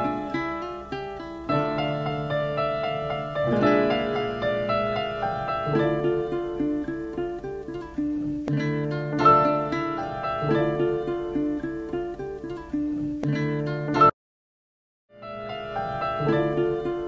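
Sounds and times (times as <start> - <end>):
instrumental music from a record: 0.0 - 14.0.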